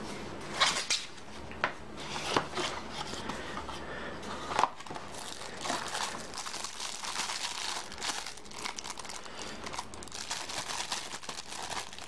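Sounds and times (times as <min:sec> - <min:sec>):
plastic bag crinkling: 0:04.8 - 0:12.0.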